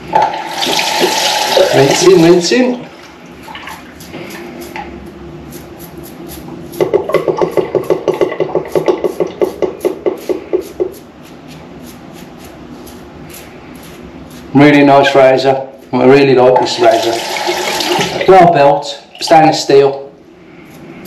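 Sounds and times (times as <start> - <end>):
razor scraping stubble: 3.6 - 7.0, 9.1 - 17.0.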